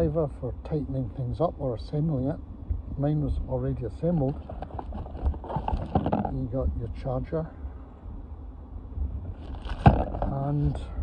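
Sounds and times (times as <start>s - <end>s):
wind rumble on microphone: 0.0s - 11.0s
microphone handling noise: 4.1s - 6.8s, 9.0s - 11.0s
plastic packaging rustling: 9.4s - 10.2s.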